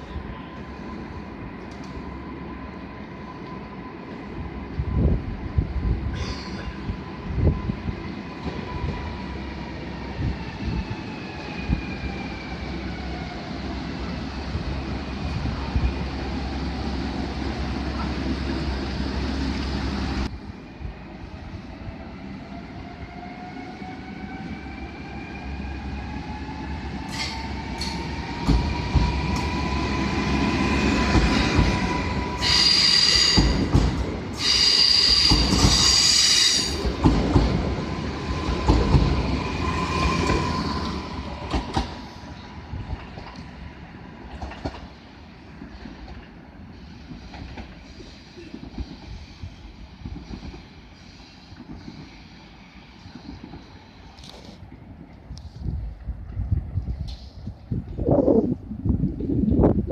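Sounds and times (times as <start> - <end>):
distant train approaching: 0.0 - 59.0
train wheel squeal: 6.1 - 9.2, 23.0 - 33.8, 34.4 - 36.9.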